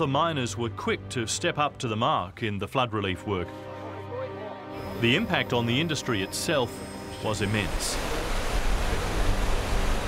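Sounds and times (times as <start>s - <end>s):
rush of falling water: 7.2s - 10.0s.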